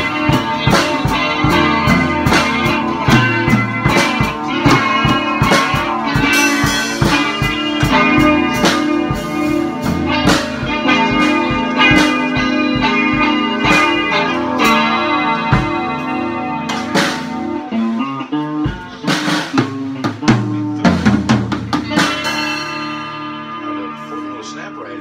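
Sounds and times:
drum and cymbal strikes: 0:00.0 - 0:23.5
electric guitar chords: 0:00.0 - 0:25.0.

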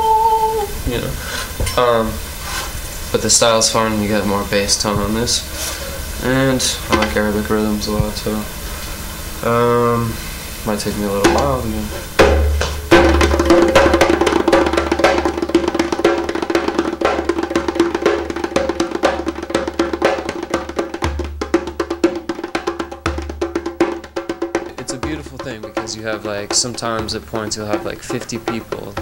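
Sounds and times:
djembe played by hand: 0:11.2 - 0:29.0.

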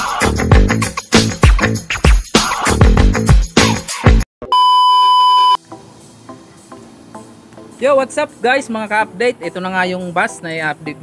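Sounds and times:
steady electronic beep: 0:04.5 - 0:05.6.

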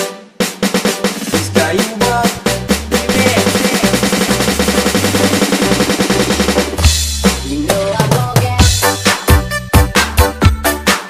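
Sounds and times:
snare drum roll: 0:00.4 - 0:08.2
stepping bass line: 0:00.7 - 0:11.0.

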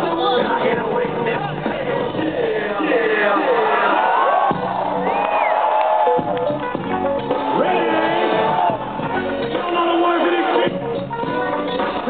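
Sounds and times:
person rapping over a beat: 0:00.0 - 0:03.6
hip-hop over loudspeakers: 0:00.0 - 0:04.6, 0:06.9 - 0:12.0.

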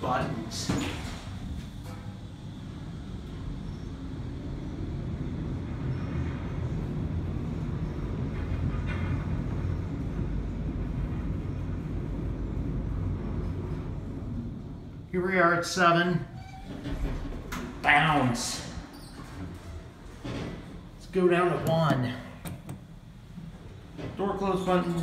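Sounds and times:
elevator low rumble: 0:00.0 - 0:25.0.

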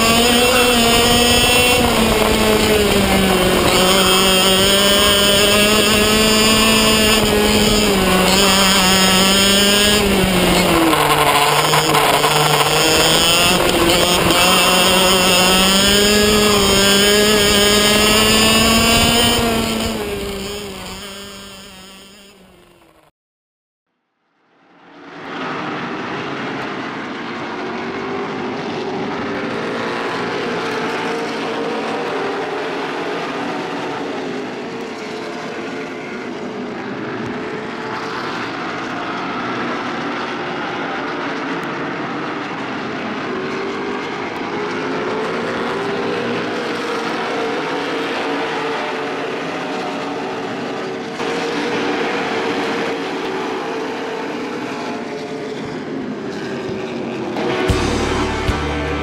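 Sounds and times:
race car engines passing: 0:00.0 - 0:23.0, 0:24.9 - 0:59.0.

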